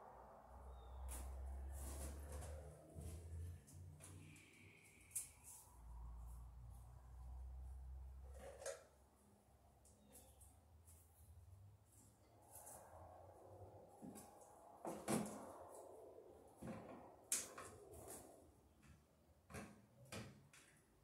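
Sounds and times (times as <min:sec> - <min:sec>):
rustling and scraping: 0:01.0 - 0:05.7.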